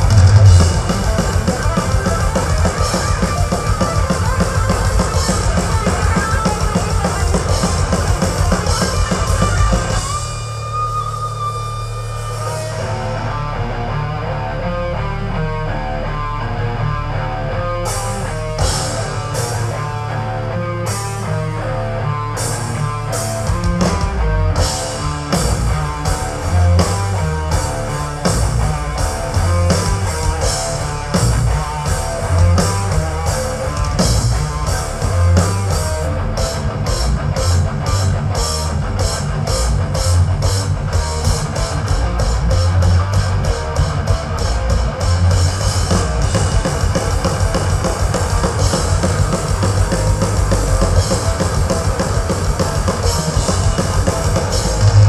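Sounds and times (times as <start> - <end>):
guitar riff: 0.0 - 55.0
live thrash metal band: 0.0 - 55.0.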